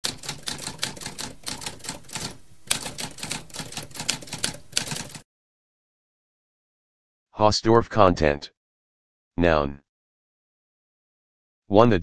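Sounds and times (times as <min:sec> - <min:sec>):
typewriter keys clacking: 0:00.0 - 0:05.2.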